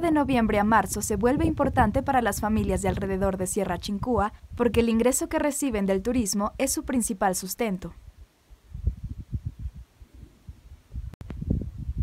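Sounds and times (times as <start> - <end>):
wind buffeting microphone: 0.0 - 6.6, 8.1 - 12.0.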